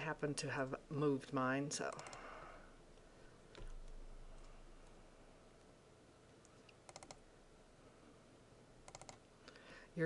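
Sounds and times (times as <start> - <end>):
faint mouse clicks: 6.4 - 7.2, 8.9 - 9.6.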